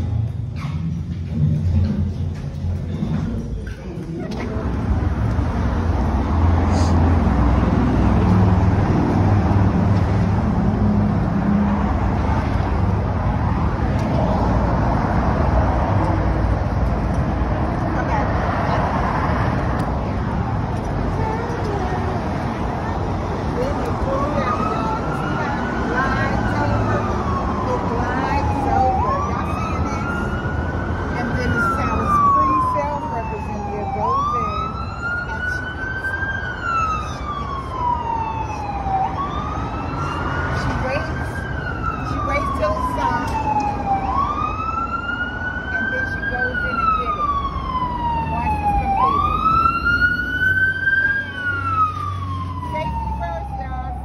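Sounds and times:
low traffic rumble: 0.0s - 54.0s
emergency vehicle siren wailing: 4.8s - 54.0s.

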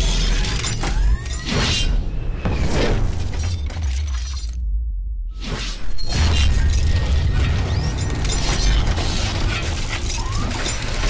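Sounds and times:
deep bass rumble: 2.4s - 5.4s
whooshes: 4.6s - 6.7s.

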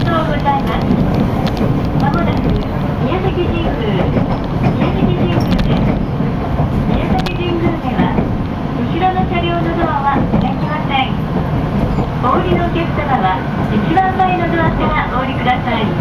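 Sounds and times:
people talking: 0.0s - 1.0s, 2.0s - 6.0s, 6.9s - 11.2s, 12.2s - 16.0s
train rumbling on rails: 0.0s - 16.0s.

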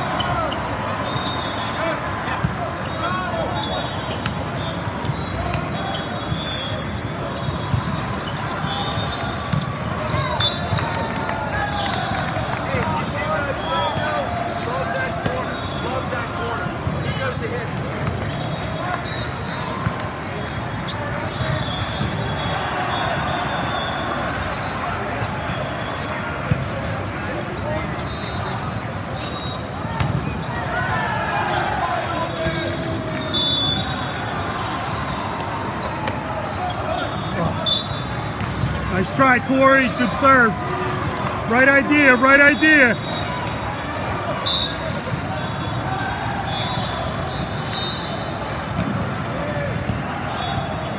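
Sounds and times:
balls hit and bouncing: 38.3s - 38.9s, 48.6s - 50.1s
voices talking and calling out: 38.8s - 43.2s.

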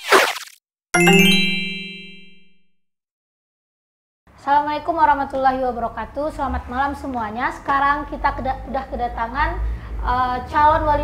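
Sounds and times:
bright chime ringing: 1.0s - 2.6s.

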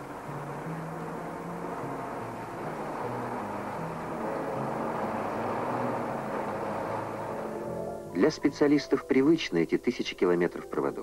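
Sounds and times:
steady rushing noise: 0.0s - 8.6s
low held notes: 0.0s - 11.0s.

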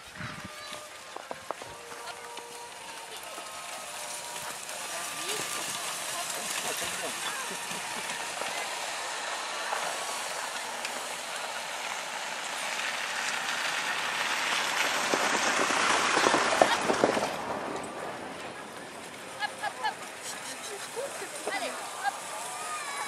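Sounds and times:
sleigh runners hissing over snow: 0.0s - 23.0s.

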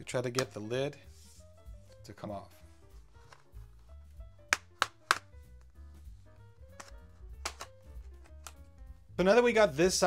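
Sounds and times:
plastic clips snapping loose: 4.5s - 5.3s, 6.8s - 8.6s.

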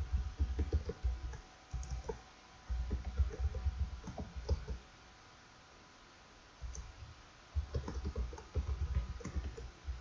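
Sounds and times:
computer keyboard typing: 0.0s - 4.8s, 6.6s - 6.9s, 7.6s - 10.0s.

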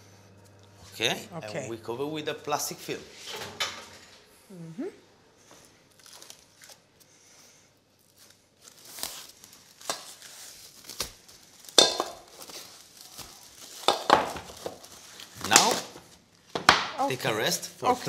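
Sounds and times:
cling film crinkling: 5.9s - 7.1s, 7.9s - 16.5s
cling film tearing: 8.1s - 16.0s.

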